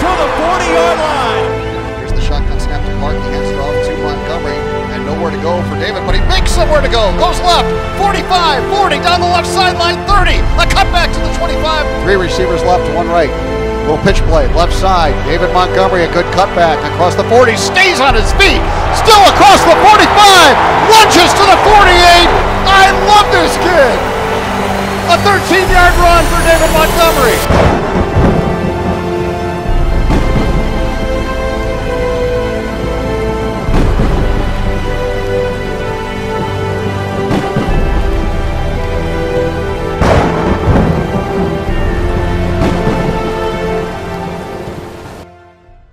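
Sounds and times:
sustained low music notes: 0.0s - 45.9s
rain: 19.6s - 30.9s, 31.8s - 45.3s.

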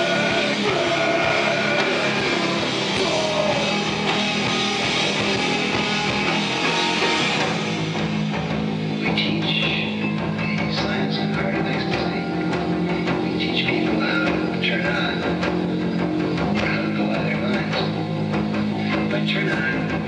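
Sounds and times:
bass: 0.0s - 20.0s
distorted electric guitars: 0.0s - 20.0s
drums: 0.0s - 20.0s.

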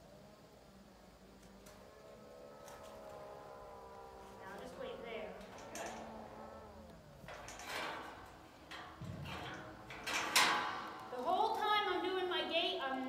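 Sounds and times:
metal gate rattling: 1.5s - 13.0s.

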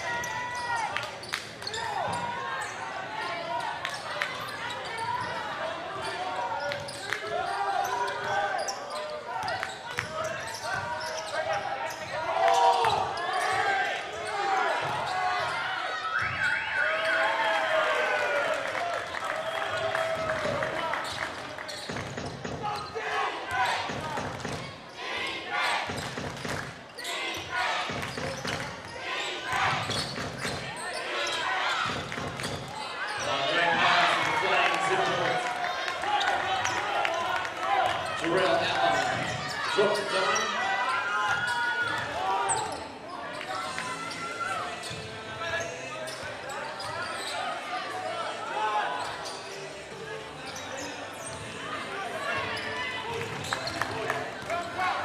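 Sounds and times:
voices calling out in a hall: 0.0s - 55.0s.

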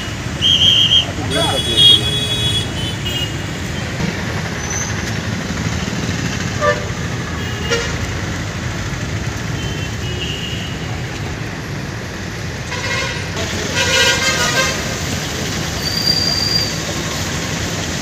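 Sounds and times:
vehicle horns honking: 0.0s - 3.6s, 6.6s - 8.0s, 9.6s - 11.0s, 12.7s - 15.0s
street traffic rumble: 0.0s - 18.0s.

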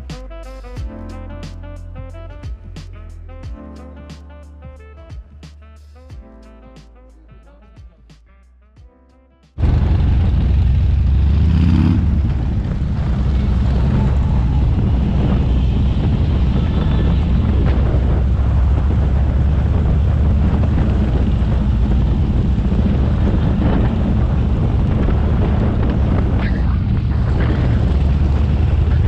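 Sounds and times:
motorcycle engine: 9.6s - 29.0s
wind on microphone: 9.6s - 29.0s.

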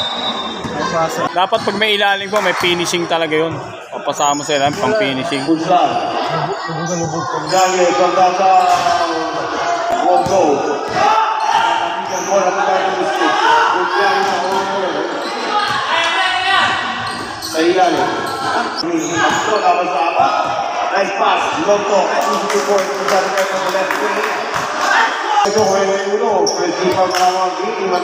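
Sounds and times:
people calling out: 0.0s - 8.4s.

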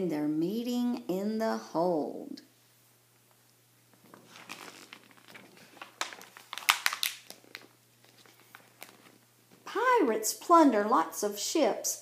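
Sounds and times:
page crackling: 3.9s - 9.6s
paper pages rustling: 3.9s - 9.6s.

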